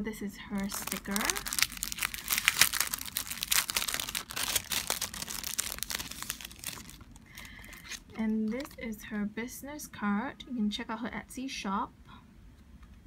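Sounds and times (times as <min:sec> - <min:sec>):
cellophane crinkling: 0:00.5 - 0:08.8.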